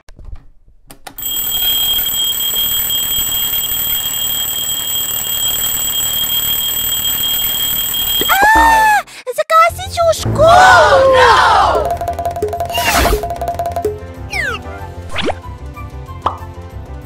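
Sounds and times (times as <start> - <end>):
alarm clock ringing: 1.2 - 8.8, 11.7 - 14.1.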